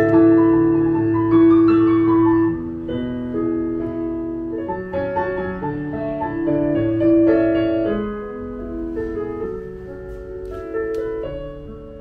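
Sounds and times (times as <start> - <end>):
slow legato piano chords: 0.0 - 12.0.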